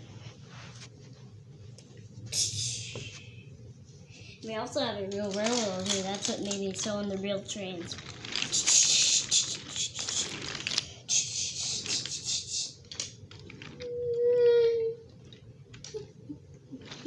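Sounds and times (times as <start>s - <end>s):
wooden toy train rattling on track: 5.1s - 14.2s.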